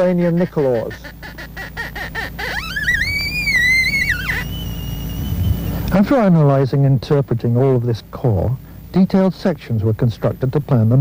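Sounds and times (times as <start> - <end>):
scintillometer tone rising in pitch: 2.0 - 6.0
faint steady high tone: 2.4 - 6.0.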